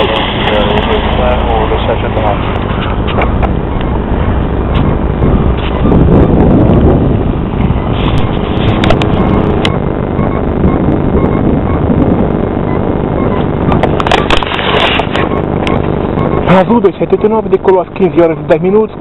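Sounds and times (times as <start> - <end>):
airliner engines roaring: 0.0 - 19.0.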